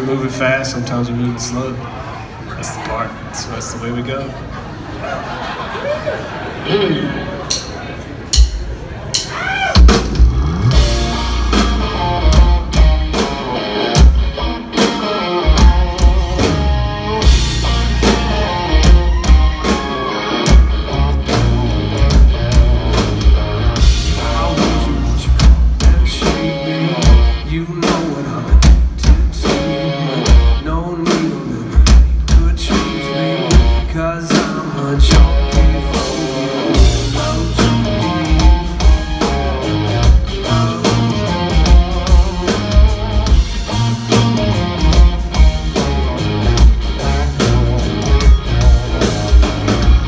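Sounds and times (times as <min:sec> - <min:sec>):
electric guitar: 0:06.6 - 0:07.5, 0:09.8 - 0:50.0
bass guitar: 0:06.6 - 0:50.0
drum kit: 0:07.4 - 0:50.0.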